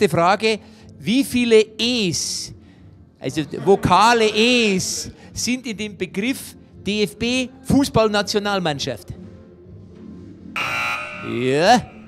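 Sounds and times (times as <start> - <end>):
game-show buzzer: 10.6 - 12.0.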